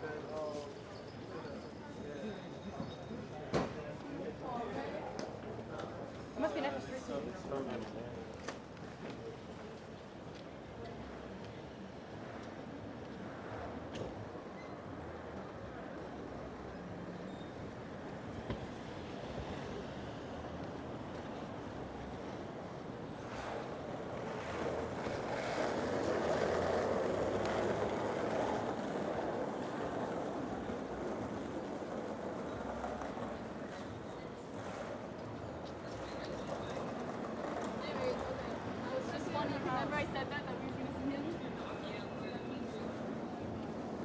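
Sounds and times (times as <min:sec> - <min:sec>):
city street traffic: 0:00.0 - 0:44.0.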